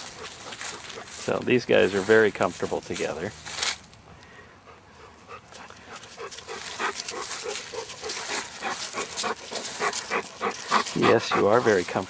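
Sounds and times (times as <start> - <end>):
dog panting: 0.0 - 1.2, 4.6 - 12.0.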